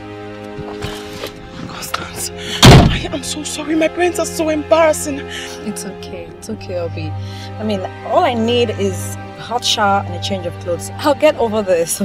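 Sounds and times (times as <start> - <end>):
background music with held tones: 0.0 - 12.0
car door slamming: 2.6 - 3.3.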